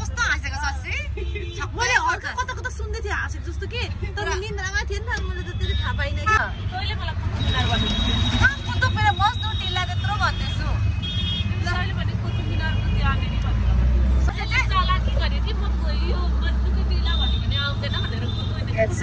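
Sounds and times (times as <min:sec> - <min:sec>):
low rumble of road traffic: 0:00.0 - 0:19.0.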